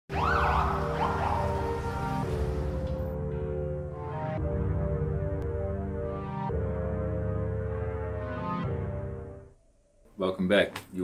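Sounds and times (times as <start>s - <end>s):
siren wailing: 0.1s - 3.2s
dark music with low beat: 0.1s - 9.4s.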